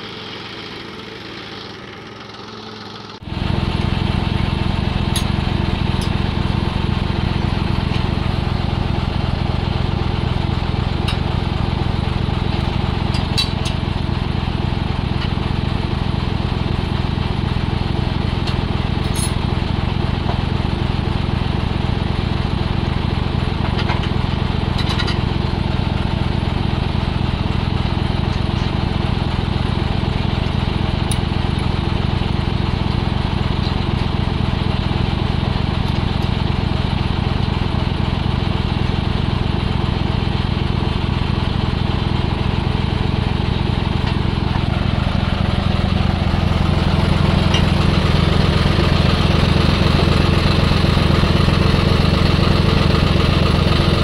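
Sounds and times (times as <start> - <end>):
tractor diesel engine idling: 0.0 - 54.0.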